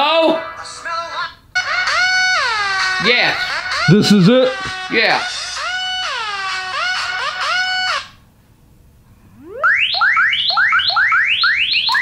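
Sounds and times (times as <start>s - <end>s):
rising sweep ringtone: 9.4s - 11.6s
sliding synthetic ringtone notes: 9.4s - 12.0s.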